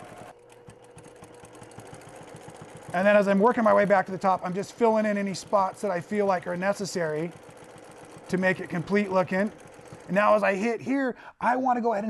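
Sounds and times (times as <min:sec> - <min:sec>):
sewing machine stitching: 0:00.0 - 0:10.9.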